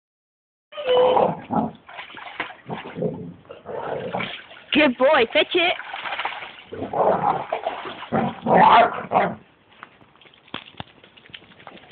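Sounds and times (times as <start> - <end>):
water splashing in paddling pool: 0.8 - 9.2.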